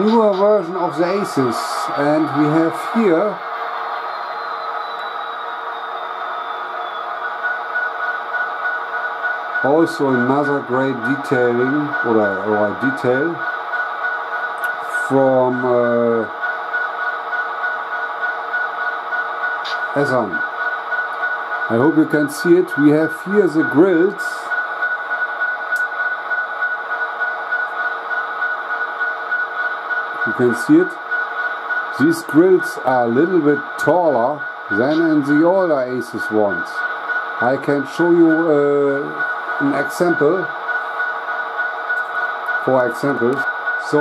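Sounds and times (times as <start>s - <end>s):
model train diesel engine sound: 0.0s - 44.0s.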